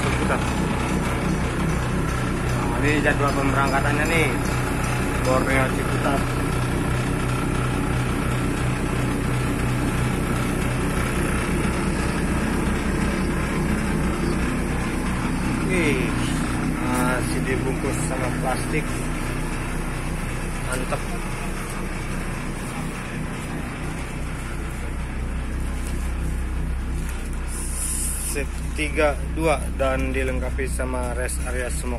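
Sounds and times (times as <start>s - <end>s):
bus engine idling: 0.0s - 31.9s.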